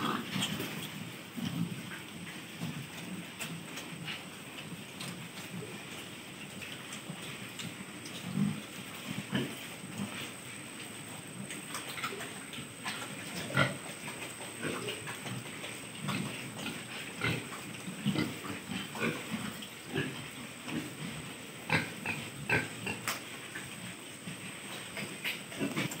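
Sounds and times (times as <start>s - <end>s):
pigs grunting: 0.0s - 4.4s, 7.0s - 26.0s.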